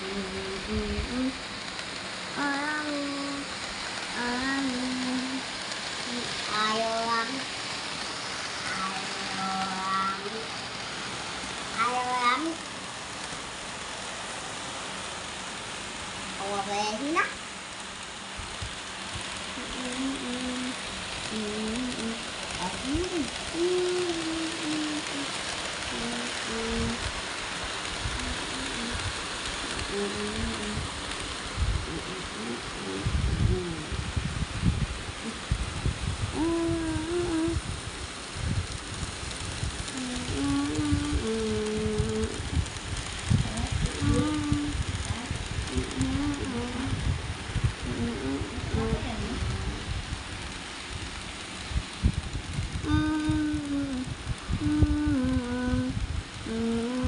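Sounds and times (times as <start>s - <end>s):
steady hiss: 0.0s - 57.0s.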